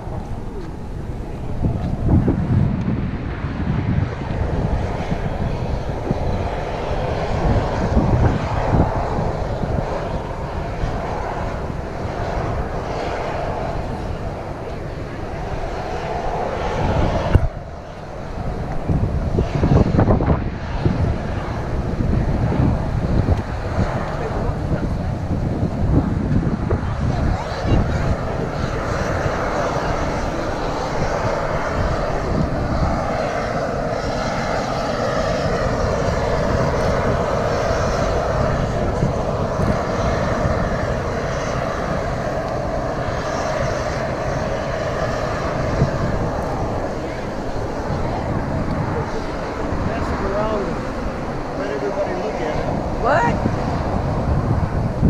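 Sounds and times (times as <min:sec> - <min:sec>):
low rumbling: 0:00.0 - 0:55.0.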